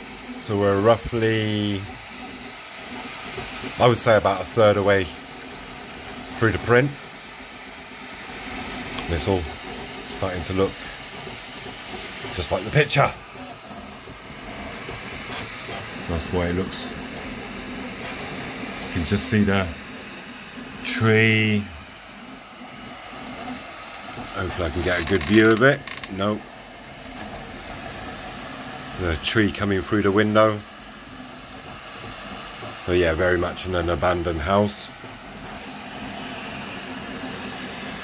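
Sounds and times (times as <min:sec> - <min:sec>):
three-d printer whirring: 0:00.0 - 0:38.0
man speaking: 0:00.4 - 0:01.9, 0:03.8 - 0:05.2, 0:06.4 - 0:07.0, 0:09.1 - 0:10.8, 0:12.4 - 0:13.2, 0:16.0 - 0:17.0, 0:18.9 - 0:19.8, 0:20.8 - 0:21.8, 0:24.3 - 0:26.4, 0:29.0 - 0:30.6, 0:32.8 - 0:34.9.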